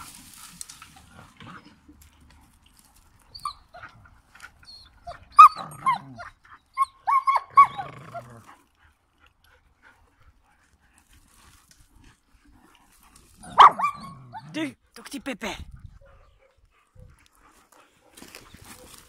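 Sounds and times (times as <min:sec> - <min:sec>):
dogs yelping and whining: 0:03.2 - 0:08.6, 0:13.4 - 0:14.6.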